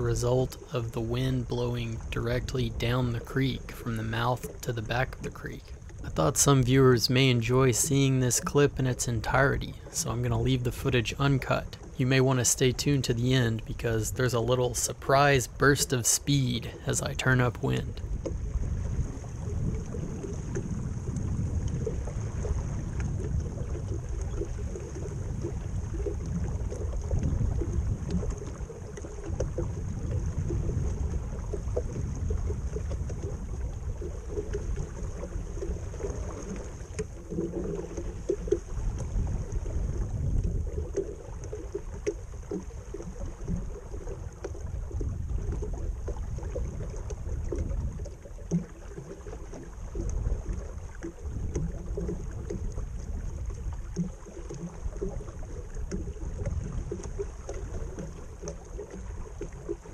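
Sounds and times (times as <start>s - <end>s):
wind buffeting microphone: 0.0s - 41.9s, 42.5s - 48.3s
water slapping against boat hull: 0.0s - 59.9s.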